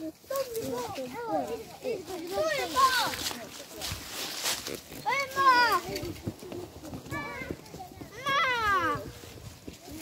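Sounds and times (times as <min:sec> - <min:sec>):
footsteps crunching on dry leaves: 0:00.0 - 0:10.0
children's high-pitched calls: 0:07.0 - 0:09.3.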